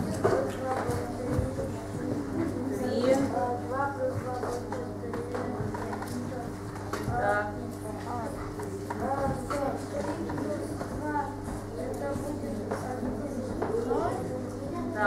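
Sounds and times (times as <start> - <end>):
low electrical hum: 0.0 - 15.0
low voices murmuring: 0.0 - 15.0.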